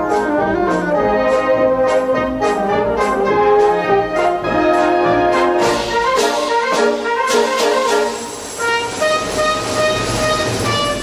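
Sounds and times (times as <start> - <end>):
brass band music: 0.0 - 11.0.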